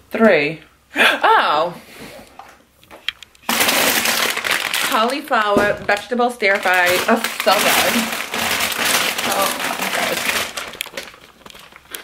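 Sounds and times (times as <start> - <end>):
plastic bag rustling and crinkling: 3.4 - 12.0.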